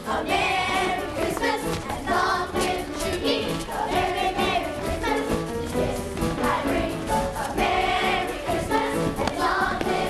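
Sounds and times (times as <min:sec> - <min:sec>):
children singing in chorus: 0:00.0 - 0:10.0
musical accompaniment: 0:00.0 - 0:10.0.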